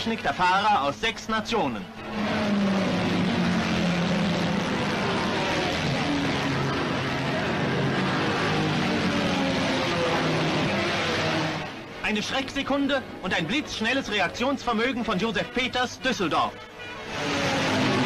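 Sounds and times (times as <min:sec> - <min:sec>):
racing car engines roaring by: 0:00.0 - 0:18.0.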